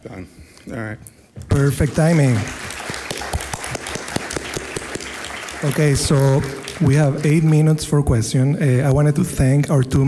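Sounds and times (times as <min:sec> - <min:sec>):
audience applauding: 0:01.5 - 0:08.0.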